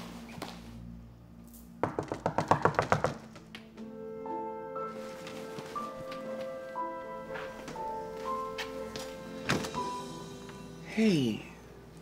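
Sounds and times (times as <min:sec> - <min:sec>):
background music: 0:00.0 - 0:12.0
rapid knocking on door: 0:01.8 - 0:03.5.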